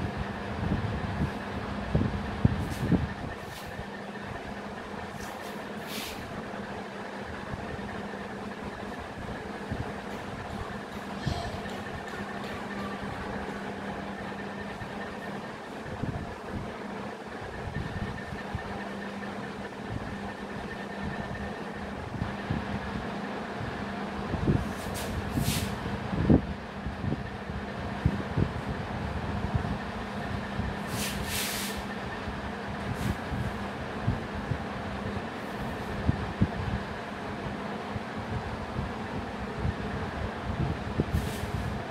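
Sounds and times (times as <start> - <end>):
steady mechanical hum: 0.0 - 41.9.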